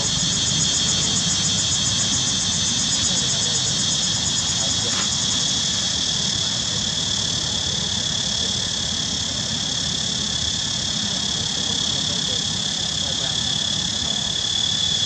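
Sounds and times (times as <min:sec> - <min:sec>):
high-pitched insect chorus: 0:00.0 - 0:15.0.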